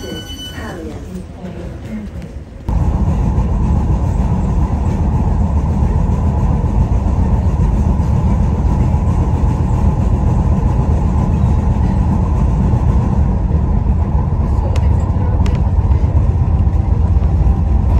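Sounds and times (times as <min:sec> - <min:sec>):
train wheels rumbling: 0:00.0 - 0:17.9.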